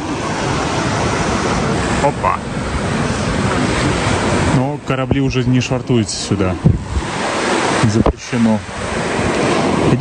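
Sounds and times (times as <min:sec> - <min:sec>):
waves washing onto pebbles: 0:00.0 - 0:10.0
wind on microphone: 0:00.0 - 0:10.0
man talking: 0:02.0 - 0:02.5, 0:04.5 - 0:06.8, 0:07.8 - 0:08.7.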